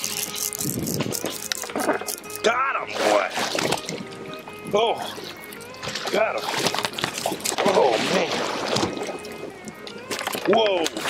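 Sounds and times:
fishing reel clicking rapidly: 0:00.0 - 0:02.5
background music: 0:00.0 - 0:11.0.

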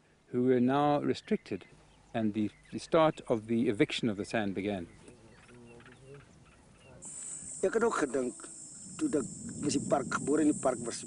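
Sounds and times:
insects chirring: 0:06.9 - 0:11.0
man speaking: 0:07.6 - 0:11.0.

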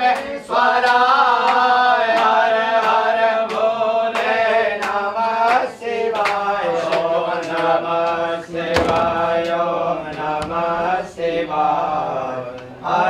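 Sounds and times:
men chanting a mantra: 0:00.0 - 0:13.0.

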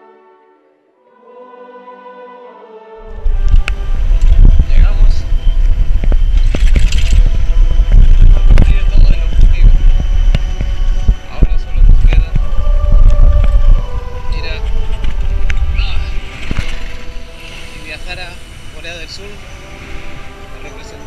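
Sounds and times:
truck rumble: 0:03.0 - 0:21.0
wind buffeting microphone: 0:03.0 - 0:21.0.

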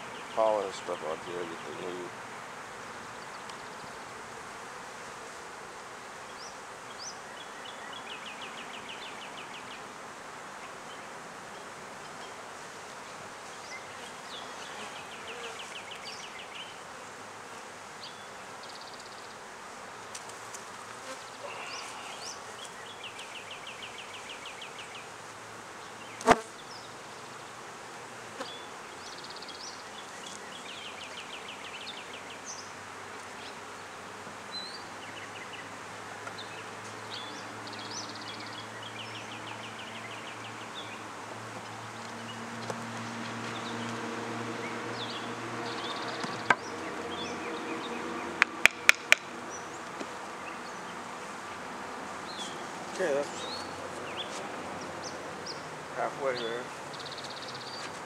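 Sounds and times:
honeybees buzzing: 0:00.0 - 0:58.0.

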